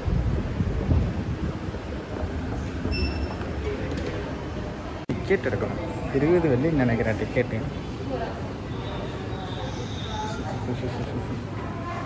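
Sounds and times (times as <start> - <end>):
faint beep: 2.9 - 3.4.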